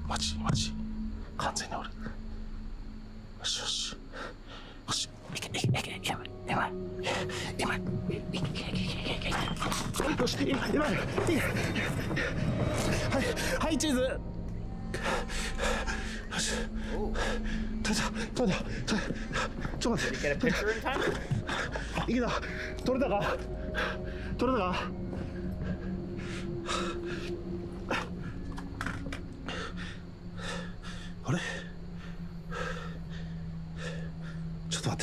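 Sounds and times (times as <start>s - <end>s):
faint steady hum: 0.0s - 35.0s.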